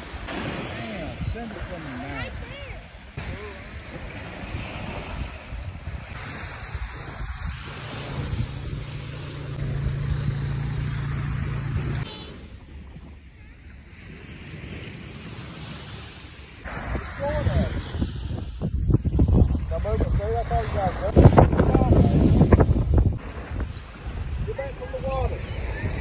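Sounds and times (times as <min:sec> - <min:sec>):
ocean surf washing in: 0:00.0 - 0:26.0
wind rumbling on microphone: 0:00.9 - 0:26.0.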